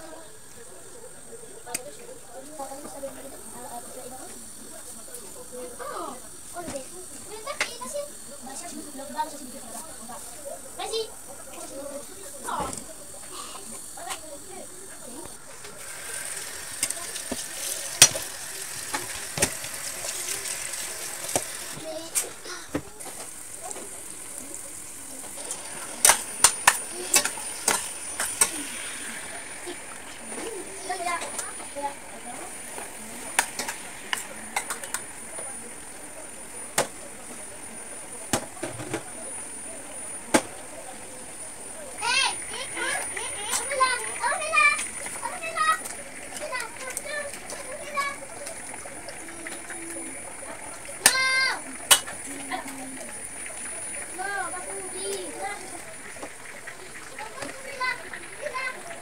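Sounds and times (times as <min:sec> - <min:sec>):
cooking hiss: 0:00.0 - 0:59.0.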